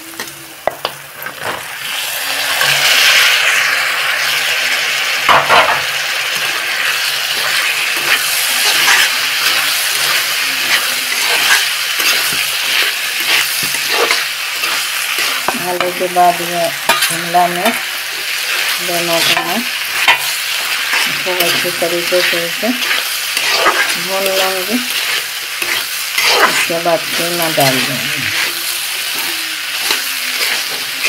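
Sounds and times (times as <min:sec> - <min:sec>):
food sizzling in hot oil: 0:00.0 - 0:31.0
metal spatula scraping a pan: 0:05.3 - 0:31.0.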